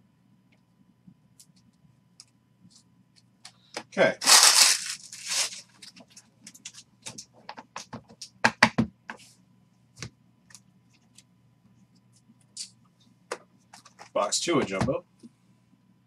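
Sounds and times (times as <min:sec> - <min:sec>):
card packaging ripping: 0:04.2 - 0:05.8.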